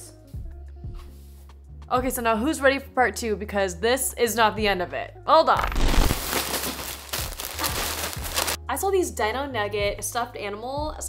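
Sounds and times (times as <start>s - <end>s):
plastic bags crinkling: 5.6s - 8.6s.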